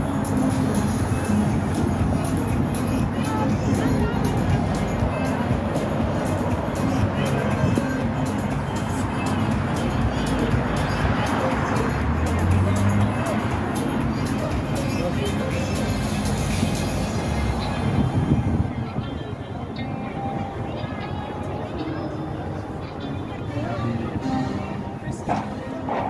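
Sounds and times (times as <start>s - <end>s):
background music: 0.0s - 18.3s
crowd voices: 0.0s - 26.0s
passing traffic: 0.0s - 26.0s.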